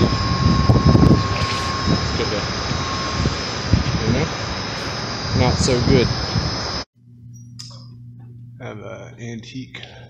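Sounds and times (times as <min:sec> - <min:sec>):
mechanical equipment drone: 0:00.0 - 0:08.8
low rumble: 0:00.0 - 0:09.4
high whine: 0:00.0 - 0:10.0.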